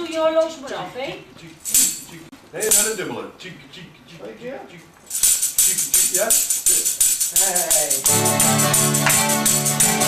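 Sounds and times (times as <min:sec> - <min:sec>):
tambourine shaken in a beat: 0:01.6 - 0:03.0, 0:05.1 - 0:10.0
strummed guitar chords: 0:08.1 - 0:10.0.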